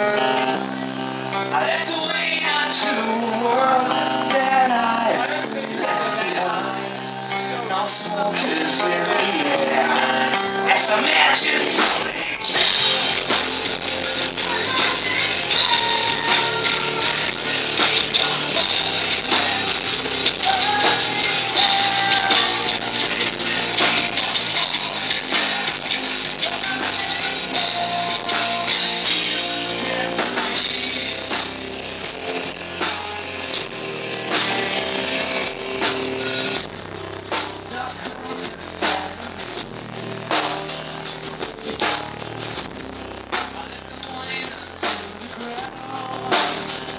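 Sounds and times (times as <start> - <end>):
heavy metal band playing: 0.0 - 46.9.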